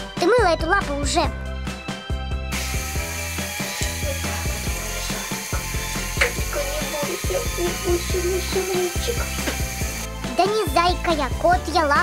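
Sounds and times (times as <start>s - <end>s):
background music with bass: 0.0s - 12.0s.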